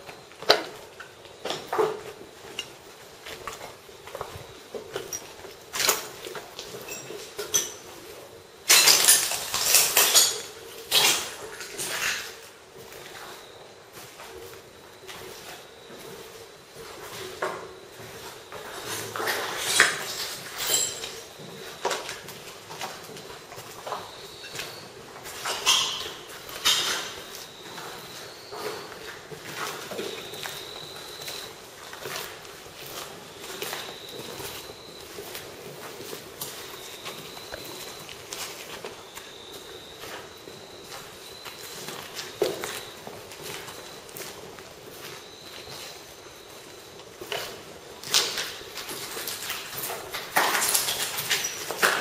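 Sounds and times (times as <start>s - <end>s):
footsteps crunching over debris: 0.0s - 52.0s
debris clinking: 8.7s - 12.2s, 19.6s - 21.3s.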